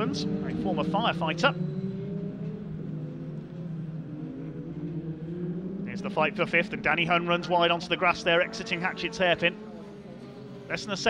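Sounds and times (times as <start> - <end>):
racing truck engines: 0.0 - 11.0.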